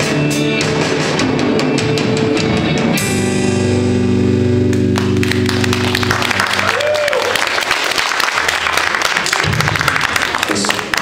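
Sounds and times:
rock band final chord: 0.0s - 6.7s
audience applause: 4.8s - 11.0s
person shouting: 6.6s - 7.3s.

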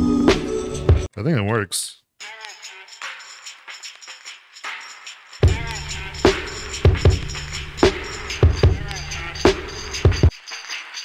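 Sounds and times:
chopped drum break: 5.4s - 10.3s.

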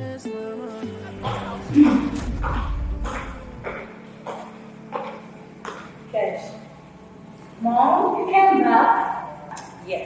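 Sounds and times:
high heels clicking on tiled floor: 1.2s - 6.1s.

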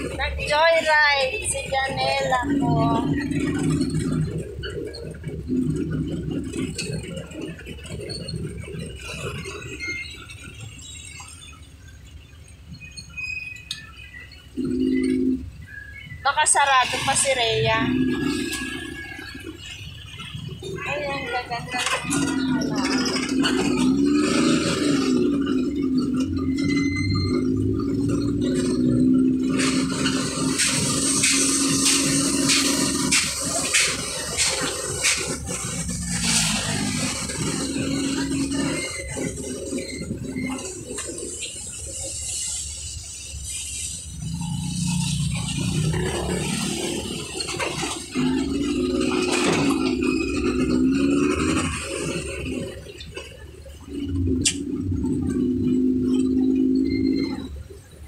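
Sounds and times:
motorcycle engine running: 0.0s - 12.2s, 14.0s - 58.0s
sidecar rattling: 0.0s - 58.0s.

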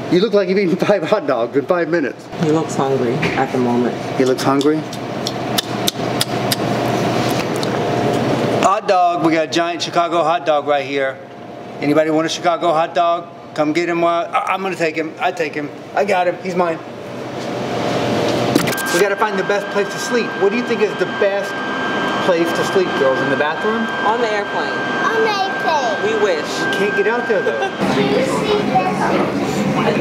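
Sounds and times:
glitchy clicks: 18.5s - 19.2s.

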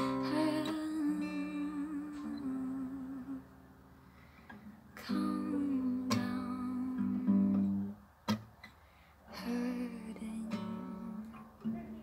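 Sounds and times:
acoustic guitar chord ringing: 0.0s - 8.5s, 9.3s - 12.0s.

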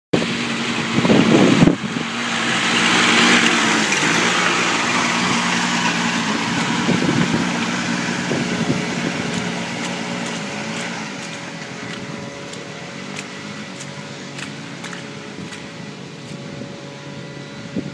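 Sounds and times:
tractor diesel engine running: 0.1s - 17.9s.

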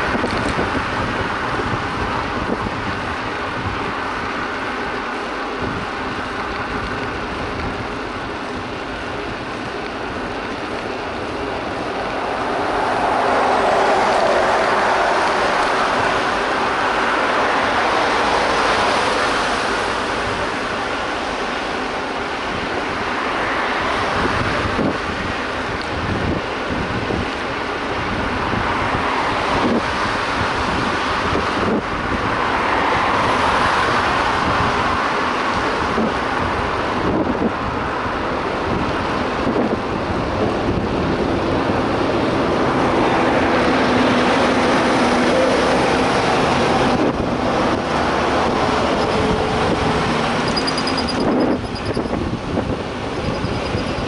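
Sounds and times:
road traffic passing: 0.0s - 54.0s
truck engine: 0.0s - 54.0s
wind rushing over microphone: 0.0s - 54.0s.

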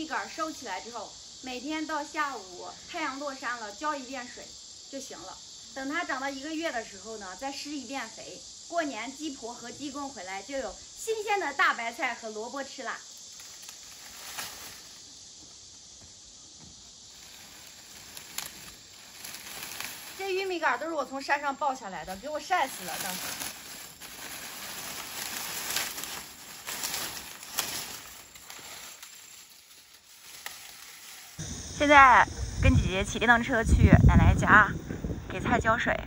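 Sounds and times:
high insect chorus: 0.0s - 36.0s
dry corn stalks rustling: 13.2s - 15.2s, 17.0s - 21.0s, 22.0s - 31.4s.

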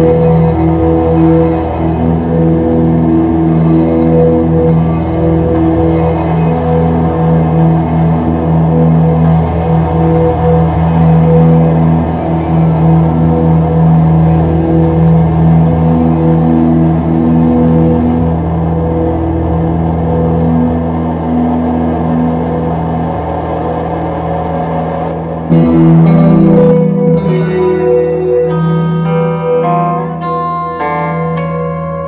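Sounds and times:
electric guitar drone: 0.0s - 32.0s.

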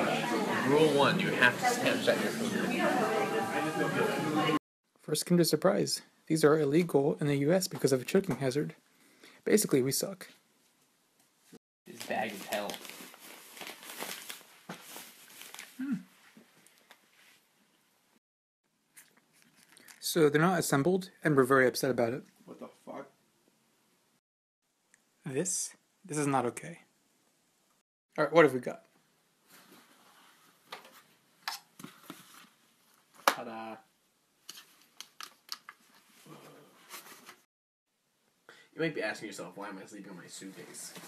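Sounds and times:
soft handling rustling: 11.9s - 17.9s
chocolate being bitten and chewed: 18.9s - 20.0s.

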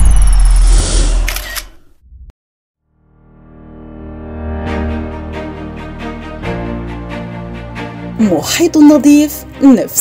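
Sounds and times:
shutter-like clicks: 1.2s - 1.8s.

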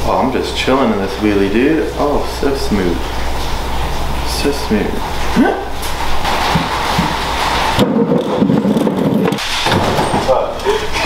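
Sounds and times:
wheelchair wheels rolling on concrete: 4.8s - 11.0s.

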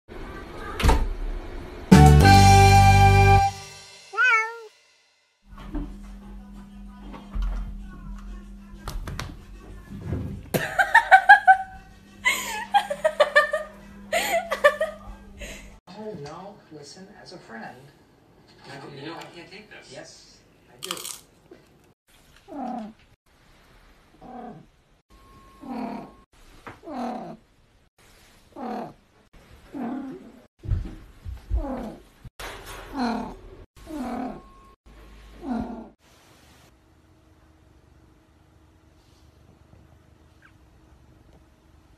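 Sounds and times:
cat meow: 4.2s - 4.7s.

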